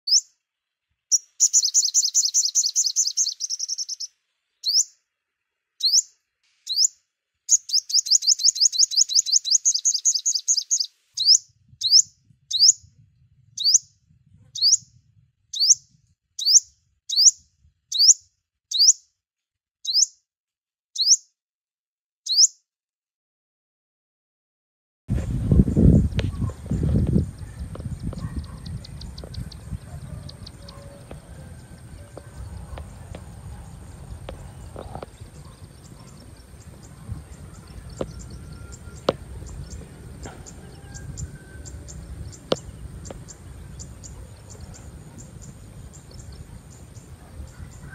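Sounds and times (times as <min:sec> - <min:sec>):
bird chirping: 0:00.0 - 0:05.1, 0:05.7 - 0:19.1, 0:19.8 - 0:20.2, 0:21.0 - 0:21.3, 0:22.3 - 0:22.6, 0:25.5 - 0:47.9
wind rumble on microphone: 0:11.2 - 0:16.2, 0:25.1 - 0:47.9.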